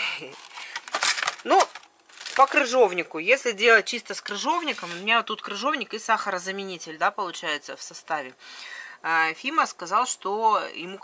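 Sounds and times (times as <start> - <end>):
packaging crinkling: 0.1 - 2.9.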